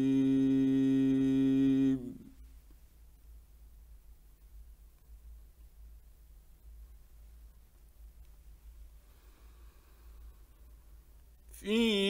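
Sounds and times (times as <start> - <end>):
man reciting long sustained note: 0.0 - 2.4, 11.5 - 12.0.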